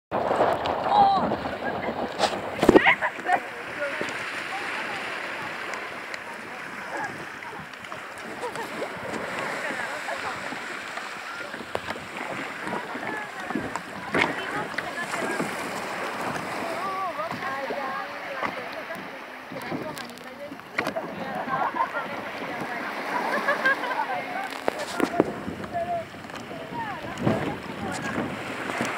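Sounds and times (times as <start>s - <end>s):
loud splash: 0.1s - 20.2s
sea water lapping and splashing: 0.1s - 28.9s
distant voices: 0.5s - 28.9s.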